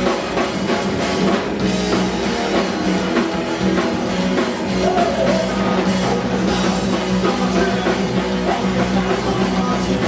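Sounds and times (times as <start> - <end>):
punk rock band playing live: 0.0 - 10.0.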